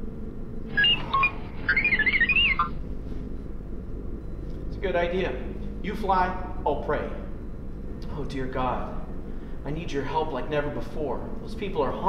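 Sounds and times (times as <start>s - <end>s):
chirping electronic warble: 0.0s - 10.7s
low spaceship hum: 0.0s - 12.0s
short electronic beeps: 0.8s - 2.8s.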